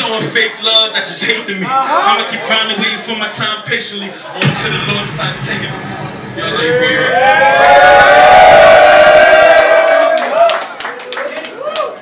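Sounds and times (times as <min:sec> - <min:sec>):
backing beat: 0:04.4 - 0:08.9
crowd clapping and cheering: 0:06.6 - 0:12.0.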